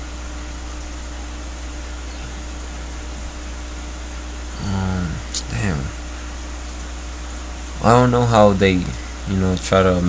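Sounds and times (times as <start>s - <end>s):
aquarium aerator hum and hiss: 0.0s - 10.0s.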